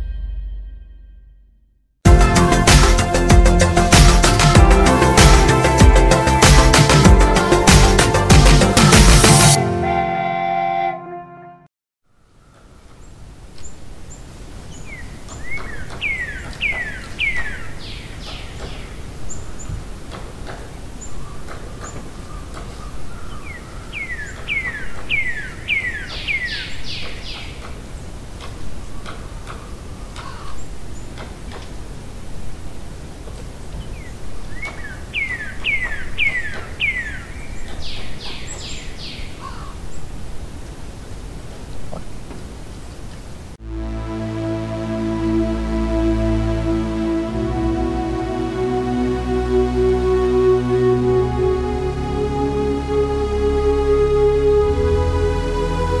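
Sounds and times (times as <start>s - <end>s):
low background noise: 12.1s - 56.0s
bird calling: 14.8s - 31.6s, 33.8s - 40.1s.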